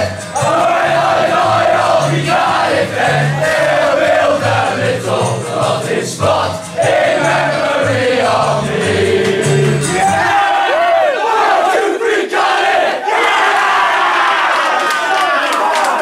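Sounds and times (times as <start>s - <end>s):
backing track with bass line: 0.0s - 10.3s
boys singing together: 0.0s - 13.1s
whooping and shouting: 10.0s - 11.8s, 13.0s - 16.0s.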